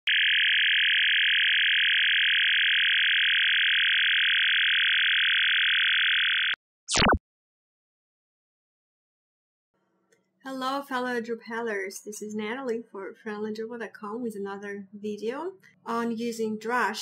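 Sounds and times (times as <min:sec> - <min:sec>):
falling electronic zap: 0:06.9 - 0:07.2.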